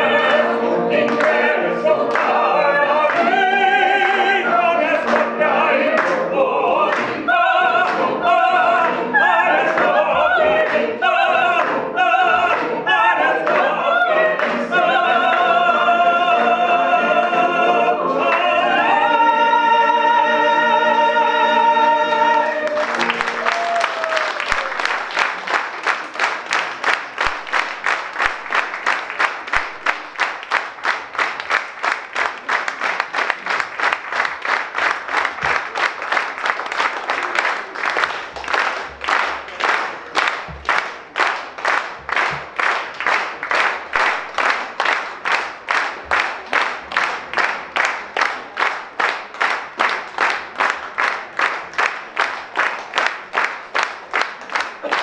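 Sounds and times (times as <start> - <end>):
audience applauding: 0.0 - 15.4, 22.2 - 55.0
rhythmic clapping in unison: 0.0 - 19.8, 21.8 - 55.0
choir singing sustained note: 0.0 - 23.4.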